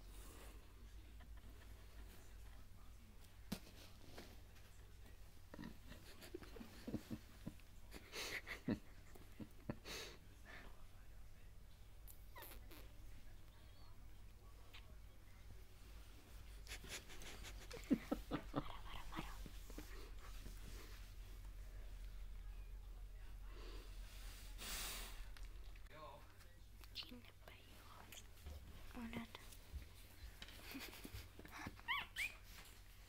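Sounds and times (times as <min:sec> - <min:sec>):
puppy squeak: 0:31.8 - 0:32.5.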